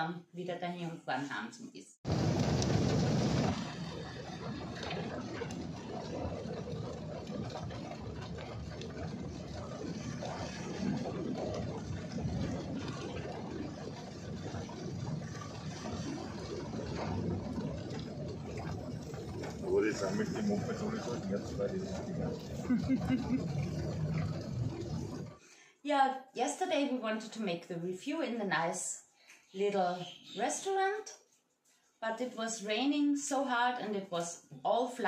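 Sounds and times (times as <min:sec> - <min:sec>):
heavy rain: 0:02.1 - 0:08.1
vehicle engine running: 0:02.1 - 0:12.8
scooter splashing past: 0:02.1 - 0:14.4
rushing flood water: 0:02.2 - 0:25.1.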